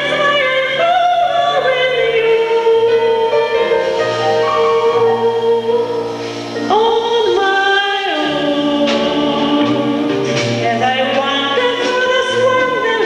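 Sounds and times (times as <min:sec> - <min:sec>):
double bass: 0:00.0 - 0:13.0
drums: 0:00.0 - 0:13.0
piano: 0:00.0 - 0:13.0
woman singing into a microphone: 0:00.0 - 0:13.0.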